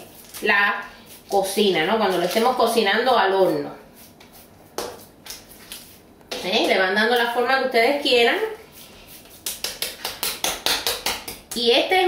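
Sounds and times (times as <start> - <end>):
hands patting meat: 9.1 - 11.7.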